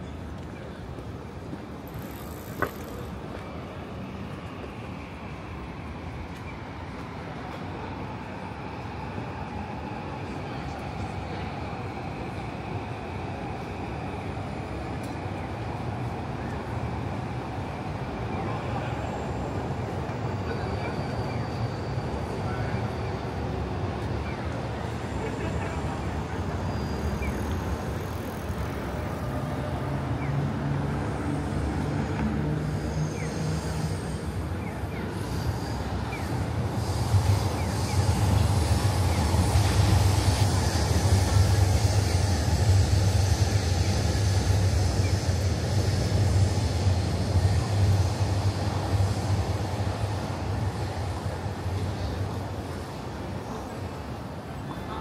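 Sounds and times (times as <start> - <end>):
city street traffic: 0.0 - 55.0.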